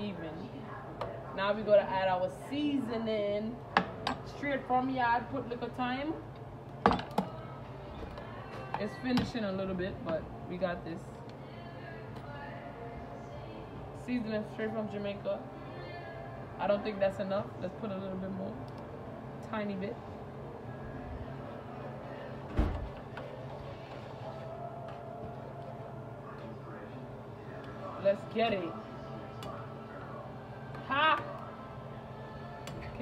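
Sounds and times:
faint music: 0.0s - 33.0s
steady low hum: 0.0s - 33.0s.

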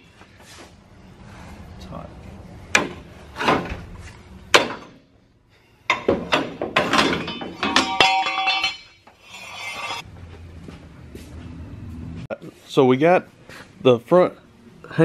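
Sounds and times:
hammer striking metal: 5.9s - 9.0s
metallic ringing: 6.9s - 10.0s.

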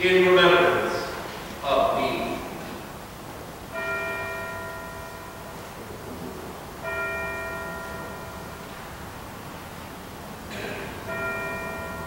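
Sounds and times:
bell ringing: 11.0s - 12.0s.

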